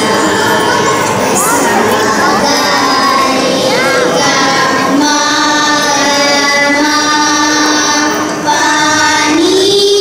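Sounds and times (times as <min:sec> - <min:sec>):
girls singing together: 0:00.0 - 0:10.0.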